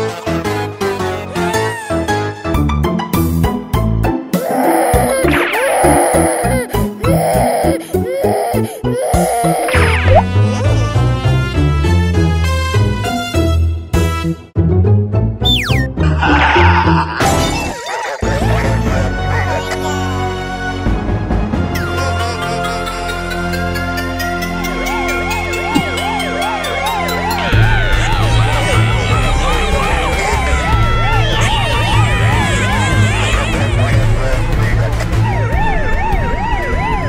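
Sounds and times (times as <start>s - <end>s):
police siren wailing: 24.9s - 37.0s.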